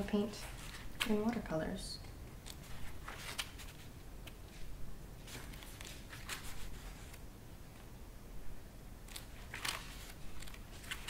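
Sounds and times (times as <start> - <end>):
book pages rustling: 0.4 - 1.4, 2.4 - 7.2, 9.1 - 11.0.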